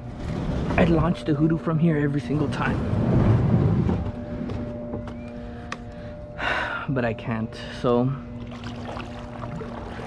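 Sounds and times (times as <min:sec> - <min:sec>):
kayak hull scraping over mud: 0:00.0 - 0:01.2, 0:02.3 - 0:04.3.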